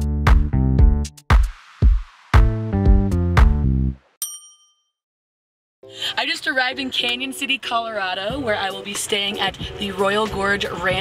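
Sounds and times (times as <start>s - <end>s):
bright bell-like ding: 4.2s - 5.0s.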